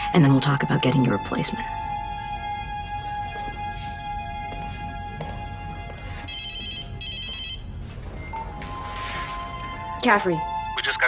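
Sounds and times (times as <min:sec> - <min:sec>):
phone electronic ringtone: 0:06.3 - 0:09.6.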